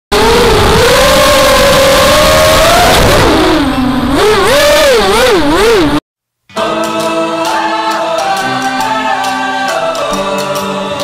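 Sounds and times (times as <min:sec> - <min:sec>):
quadcopter motors whining: 0:00.1 - 0:06.0.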